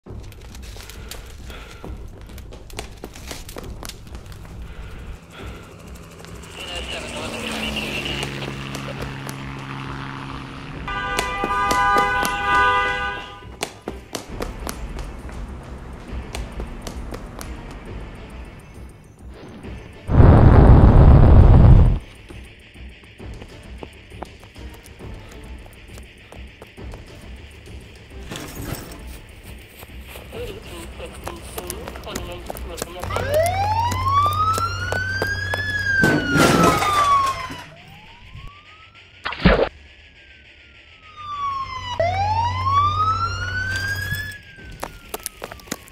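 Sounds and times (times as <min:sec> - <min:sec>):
running footsteps on pavement: 0:00.1 - 0:09.9, 0:10.9 - 0:19.0, 0:21.7 - 0:28.2, 0:29.0 - 0:36.3, 0:43.0 - 0:45.9
police siren wailing: 0:04.7 - 0:13.5, 0:20.1 - 0:22.0, 0:30.2 - 0:45.9
car horn: 0:06.4 - 0:13.7
rough burst of noise: 0:20.1 - 0:22.2.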